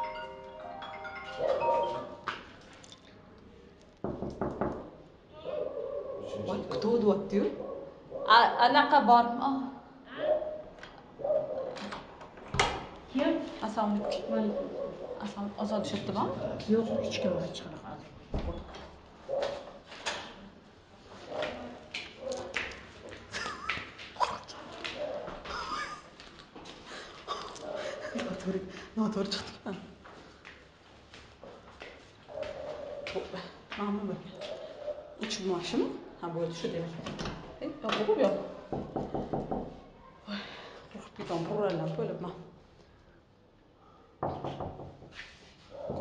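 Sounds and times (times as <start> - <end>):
knuckles knocking on metal door: 38.7 - 39.8.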